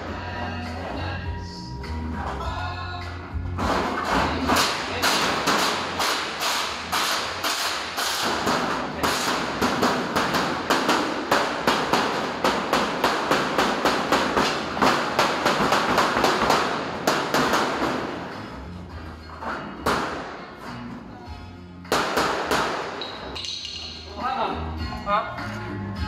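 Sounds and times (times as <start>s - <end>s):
hammer striking sheet metal: 3.6s - 18.6s, 19.8s - 20.5s.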